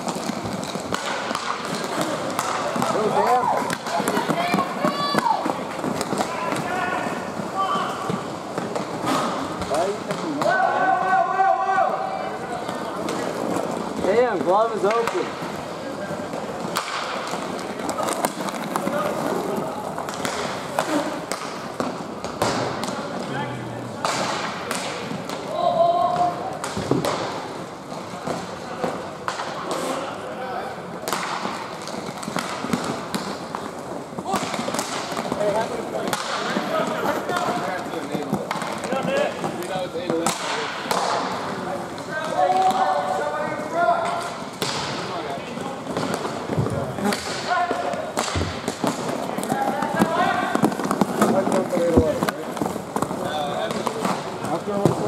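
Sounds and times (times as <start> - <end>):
hockey sticks and puck clacking: 0.0 - 55.0
rink background noise: 0.0 - 55.0.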